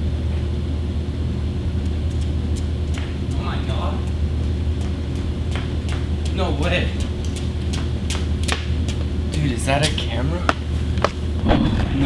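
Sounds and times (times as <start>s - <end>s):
steady low hum: 0.0s - 12.0s
voices: 3.3s - 4.2s, 5.6s - 7.7s, 9.3s - 10.6s.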